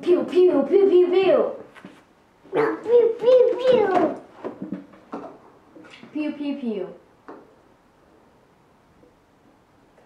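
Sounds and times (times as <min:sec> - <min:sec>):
toddler making pew pew sounds: 0:02.5 - 0:04.2.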